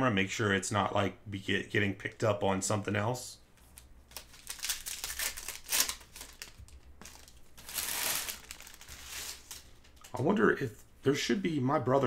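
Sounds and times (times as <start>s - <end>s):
wrapper tearing and crinkling: 3.8s - 10.1s.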